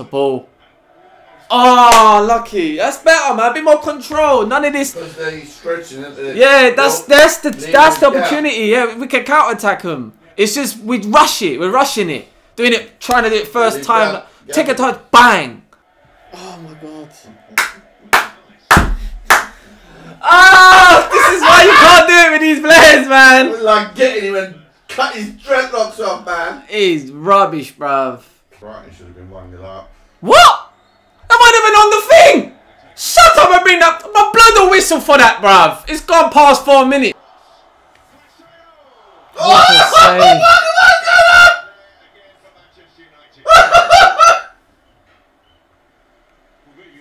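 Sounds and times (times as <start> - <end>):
hands slapping: 17.6 - 19.6
man exclaiming: 20.2 - 23.5, 39.4 - 41.6.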